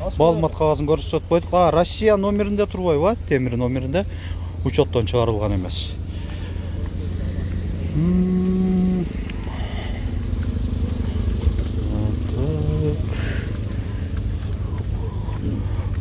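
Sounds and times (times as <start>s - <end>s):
engine idling: 0.0s - 16.0s
man calling out: 7.9s - 9.3s, 11.8s - 13.4s.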